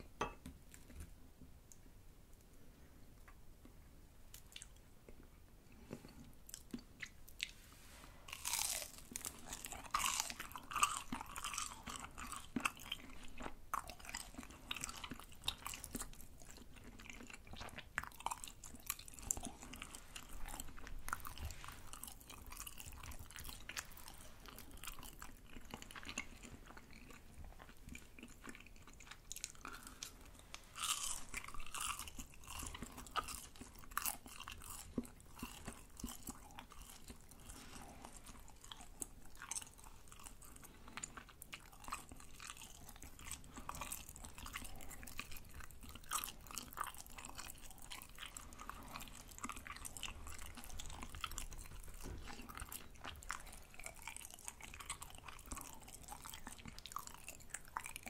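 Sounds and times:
chewing crispy fried food: 3.6s - 7.7s, 8.3s - 58.0s.

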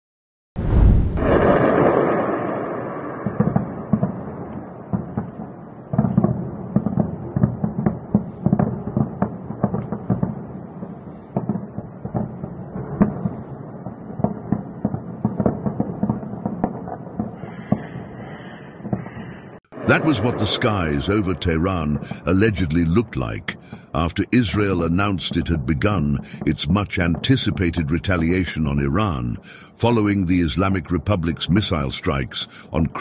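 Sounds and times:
booming intro sound effect: 0.6s - 3.9s
gunfire cracks and booms: 0.6s - 18.1s, 18.8s - 24.0s.

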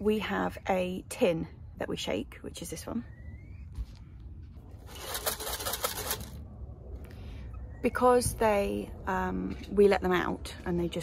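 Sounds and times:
corn rattling in shaken tin: 4.8s - 6.4s.

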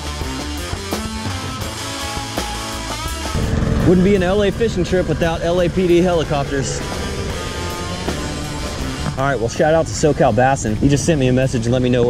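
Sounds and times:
plucked guitar music: 0.6s - 9.4s
helicopter rotors rumbling: 3.1s - 10.8s.

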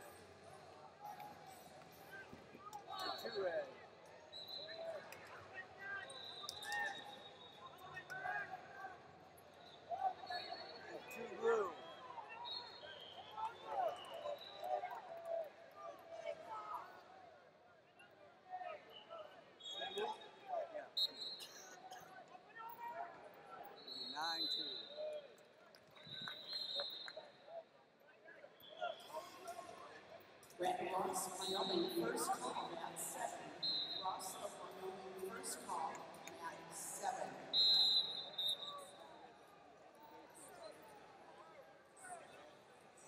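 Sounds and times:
short high-pitched whistle tones: 33.6s - 34.0s, 37.5s - 39.0s.

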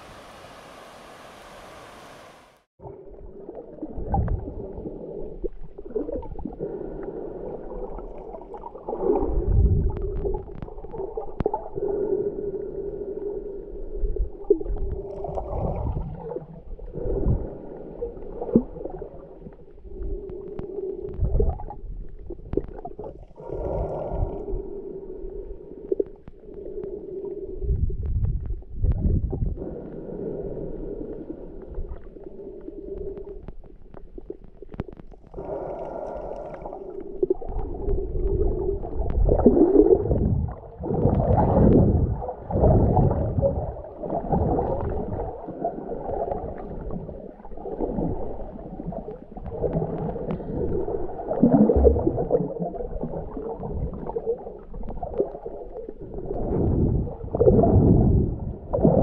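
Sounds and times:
low underwater rumbling: 0.0s - 59.0s
muffled underwater hum: 0.0s - 59.0s.

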